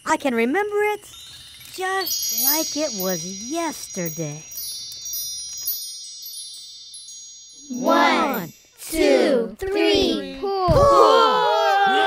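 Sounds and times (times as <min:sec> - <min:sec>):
wind chimes ringing: 0:00.0 - 0:09.6.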